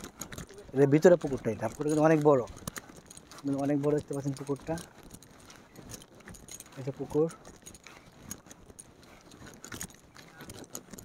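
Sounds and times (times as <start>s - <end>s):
faint scattered clicks: 0.0s - 11.0s
light jingling: 0.0s - 11.0s.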